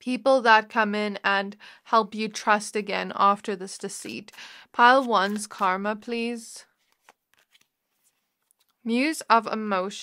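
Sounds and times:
cards flicking and sliding: 4.1 - 5.8, 6.8 - 8.8.

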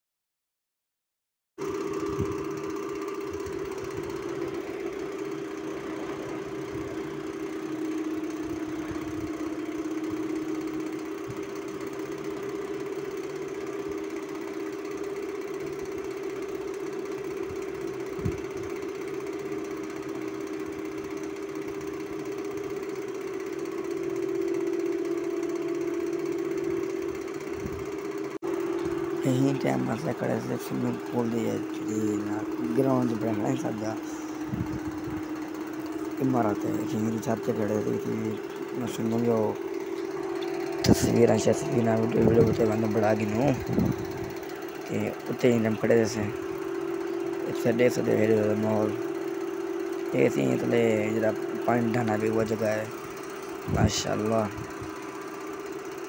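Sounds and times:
motor humming: 1.6 - 56.0.

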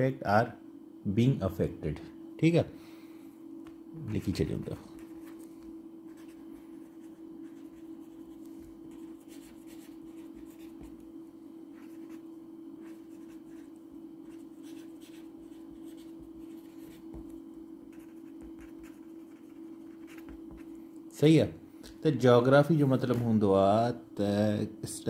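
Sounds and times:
steady low hum: 0.0 - 25.0
pen scratching on paper: 6.1 - 11.0, 11.7 - 12.2, 12.8 - 17.3, 17.9 - 20.7.

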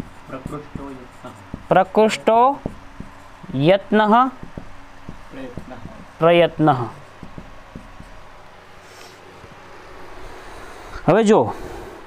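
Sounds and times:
even hiss: 8.0 - 12.0.

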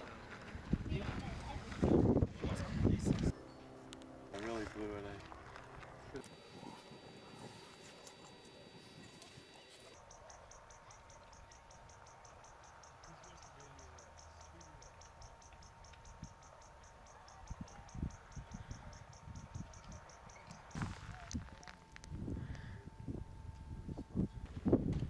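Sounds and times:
cricket chirping: 6.3 - 21.3.

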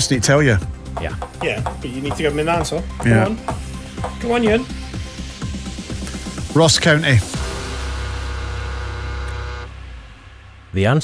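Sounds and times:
deep synthesized chord: 7.3 - 11.0.

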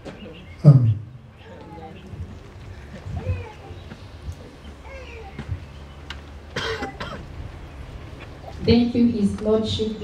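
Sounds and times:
faint distant voices: 0.0 - 10.0
cough: 6.5 - 7.2.

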